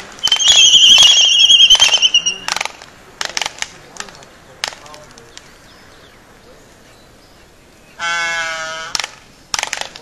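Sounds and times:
albatross sky call: 0:00.2 - 0:02.6, 0:08.0 - 0:09.0.

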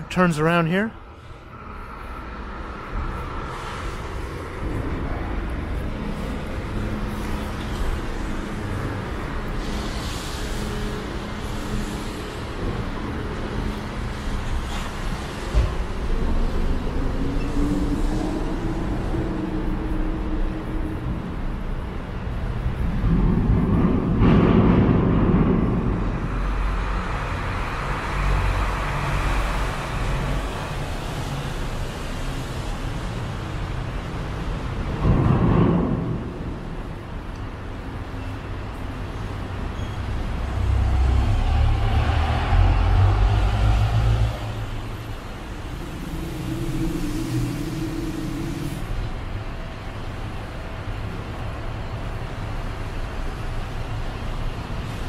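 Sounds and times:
cars passing: 0:00.0 - 0:55.0
heavy engine rumble: 0:00.0 - 0:55.0.

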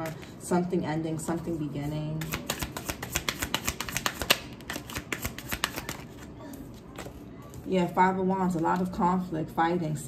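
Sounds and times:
cards being shuffled: 0:02.2 - 0:07.7.

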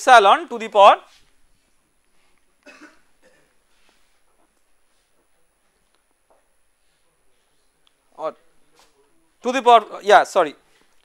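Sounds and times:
man coughing: 0:02.6 - 0:03.6.

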